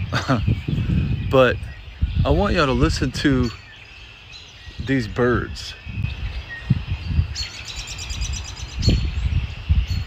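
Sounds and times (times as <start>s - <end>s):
birds calling and singing: 0.0s - 10.0s
fast bird trill: 0.0s - 10.0s.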